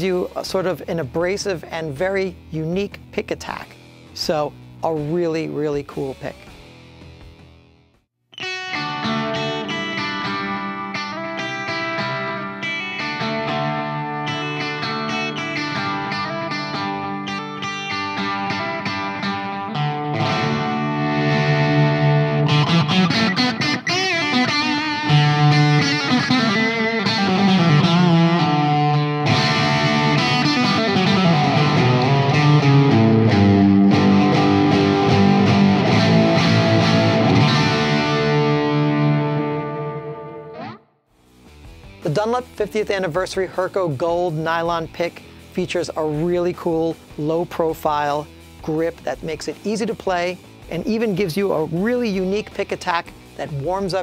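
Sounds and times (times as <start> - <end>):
distorted electric guitar: 0.0 - 54.0.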